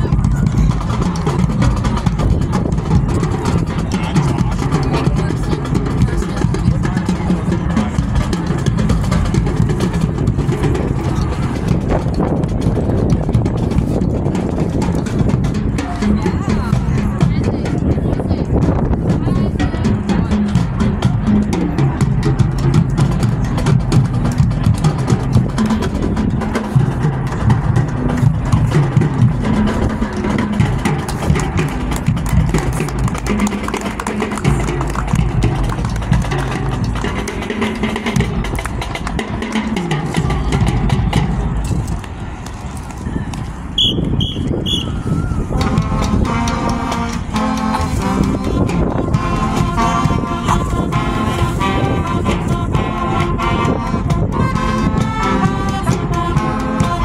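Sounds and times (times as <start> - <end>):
drum beat: 0.0 - 42.1, 43.8 - 57.0
marching band playing: 0.0 - 57.0
low brass: 43.8 - 57.0.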